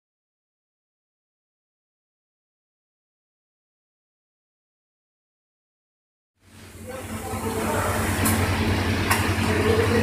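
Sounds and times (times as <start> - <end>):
low machine hum: 6.4 - 10.0.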